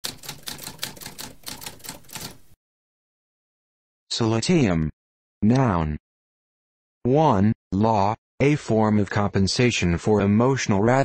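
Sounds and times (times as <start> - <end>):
typewriter keys clacking: 0.0 - 2.4.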